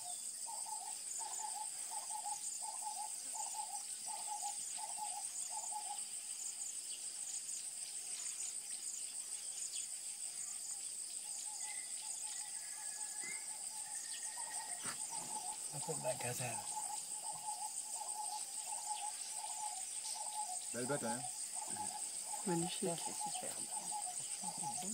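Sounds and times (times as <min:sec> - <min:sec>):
high-pitched insect drone: 0:00.0 - 0:24.9.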